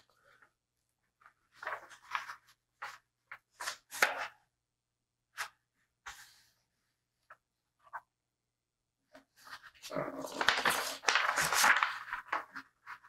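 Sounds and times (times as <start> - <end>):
paper sheet rustling and crackling: 1.1 - 4.4, 9.2 - 13.0.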